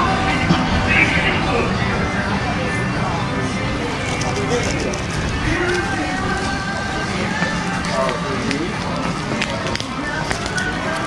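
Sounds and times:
footsteps rumble: 0:00.0 - 0:11.0
indistinct background voices: 0:00.0 - 0:11.0.

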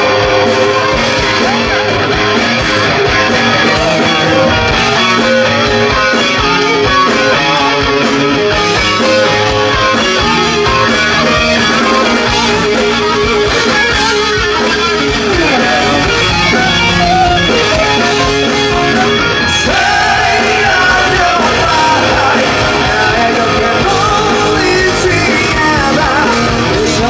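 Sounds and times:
electric guitar lead: 0:00.0 - 0:27.0
live rock band playing: 0:00.0 - 0:27.0.

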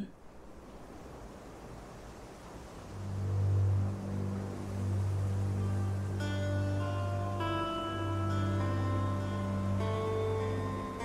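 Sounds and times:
faint hiss: 0:00.0 - 0:11.0
low sustained music drone: 0:02.8 - 0:11.0.

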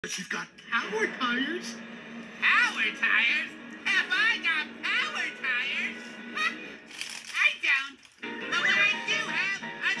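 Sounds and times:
cartoon background music: 0:02.4 - 0:10.0.

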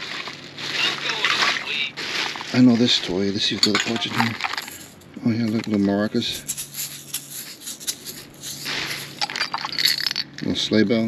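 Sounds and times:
plastic bag rustling: 0:00.0 - 0:10.3
plastic toys clattering: 0:00.0 - 0:10.8.

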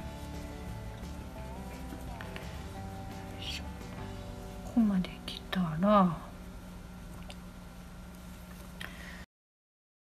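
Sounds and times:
person humming: 0:00.9 - 0:04.3.

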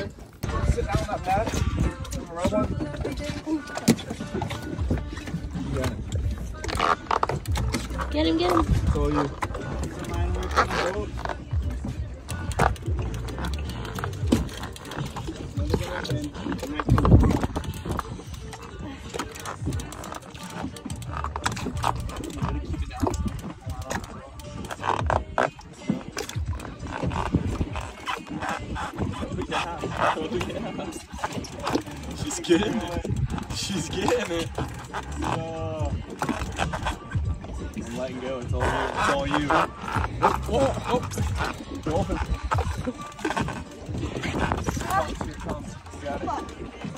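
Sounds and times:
background music: 0:00.0 - 0:46.9.

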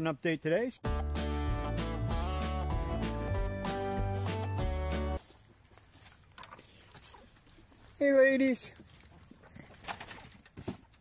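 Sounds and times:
footsteps on wood chips: 0:05.2 - 0:09.6.

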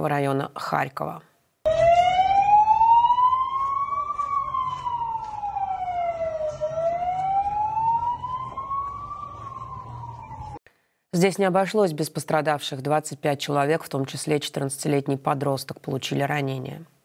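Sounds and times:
emergency siren wailing: 0:01.7 - 0:10.6
street noise rumble: 0:01.7 - 0:10.6.

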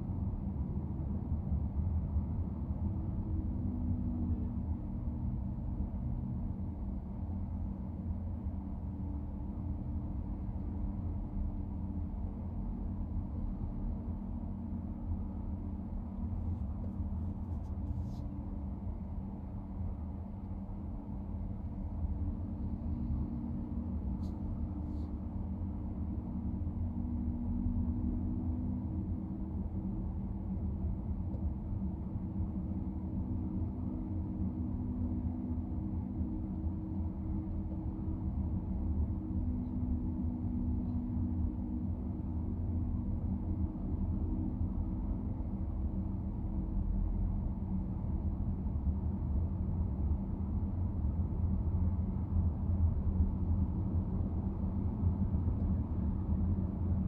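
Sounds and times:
faint hum: 0:00.0 - 0:57.0.

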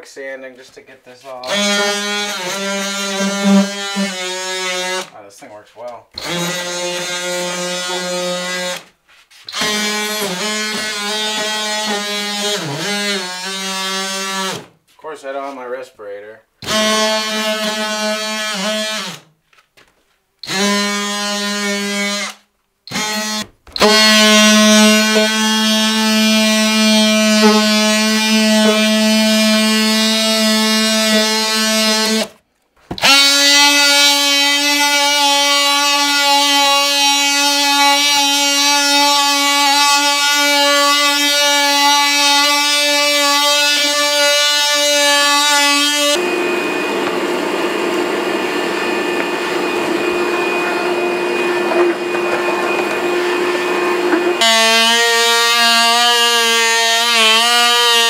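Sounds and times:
oscillating multi-tool sanding: 0:01.4 - 0:05.0, 0:22.9 - 0:32.3.

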